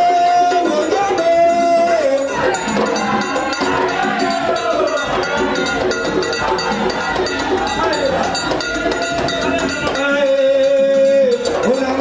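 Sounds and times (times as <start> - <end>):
crowd singing: 0.0 - 12.0
fast percussion beat: 0.0 - 12.0.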